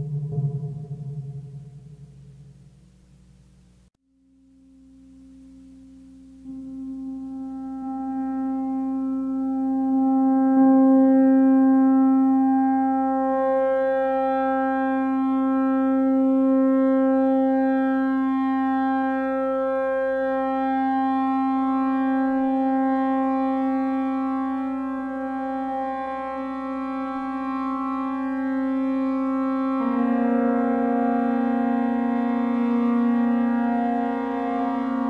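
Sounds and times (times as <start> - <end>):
synthesizer low tone: 0.0 - 3.6, 4.8 - 35.0.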